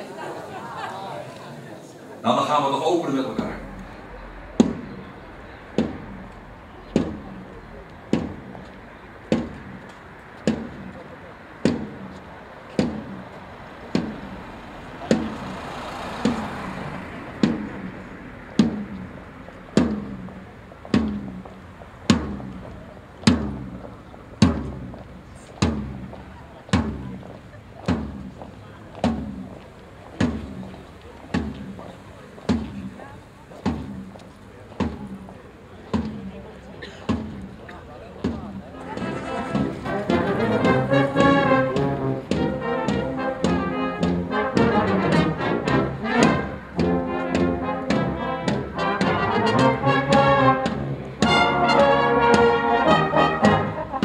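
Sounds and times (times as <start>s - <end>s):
faint voices murmuring: 0.0s - 54.0s
drum struck in slow beat: 3.4s - 8.6s, 9.2s - 9.8s, 10.4s - 10.9s, 11.6s - 12.1s, 12.7s - 13.2s, 13.8s - 14.4s, 15.0s - 15.6s, 16.2s - 25.0s, 25.6s - 26.1s, 26.7s - 27.2s, 27.9s - 28.4s, 29.0s - 29.5s, 31.3s - 31.8s, 32.5s - 33.0s, 33.6s - 34.1s, 34.8s - 35.3s, 35.9s - 36.3s, 37.0s - 37.6s, 38.2s - 44.7s, 45.6s - 49.1s.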